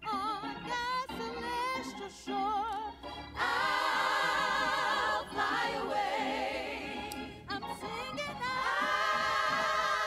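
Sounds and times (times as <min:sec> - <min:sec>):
choir singing: 0:03.4 - 0:07.5, 0:08.4 - 0:10.0.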